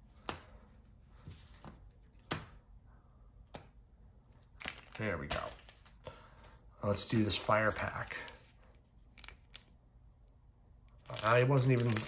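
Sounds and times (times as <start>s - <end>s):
foil wrapper rustling and crackling: 11.0s - 12.0s.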